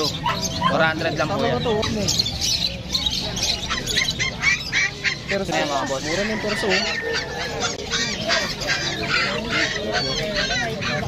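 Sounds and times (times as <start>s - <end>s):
lovebirds squawking and chirping: 0.0s - 11.0s.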